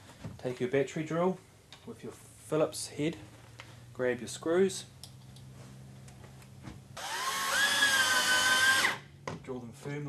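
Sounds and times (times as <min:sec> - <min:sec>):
cordless drill motor whine: 0:07.0 - 0:09.0.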